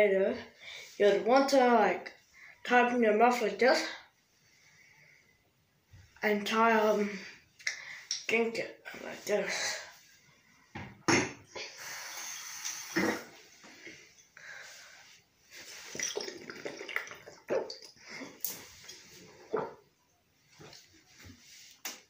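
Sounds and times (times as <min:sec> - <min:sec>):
water sloshing in glass bottle: 0:15.6 - 0:19.8.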